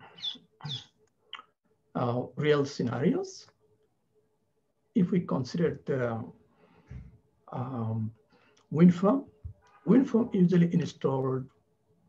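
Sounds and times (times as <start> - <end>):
man's voice in broken fragments: 9.9 - 11.5.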